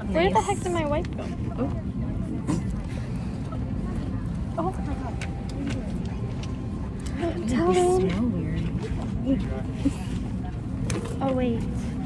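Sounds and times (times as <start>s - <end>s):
faint passenger voices: 0.0s - 12.0s.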